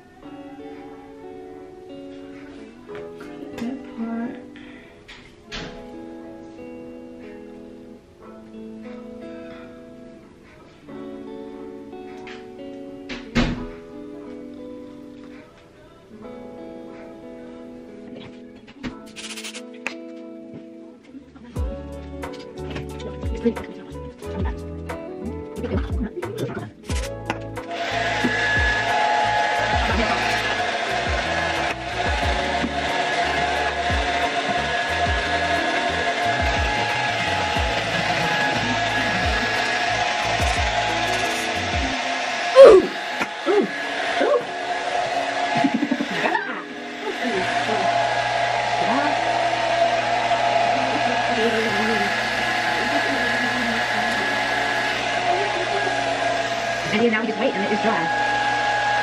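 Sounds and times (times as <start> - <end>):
hair dryer running: 26.9 - 59.0.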